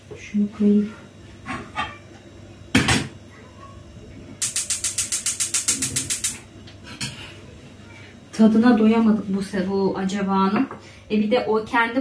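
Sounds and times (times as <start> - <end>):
gas hob spark igniter clicking: 4.4 - 6.4.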